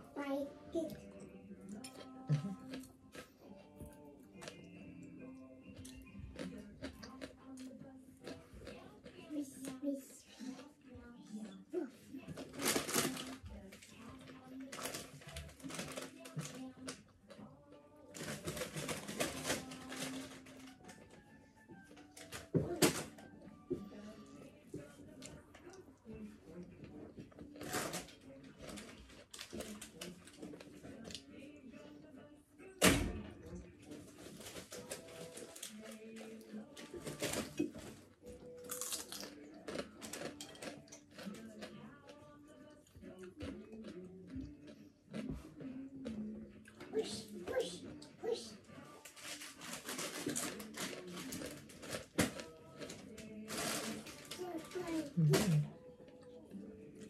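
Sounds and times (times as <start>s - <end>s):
chewing and mouth noises: 0.9s - 18.8s, 34.8s - 48.1s.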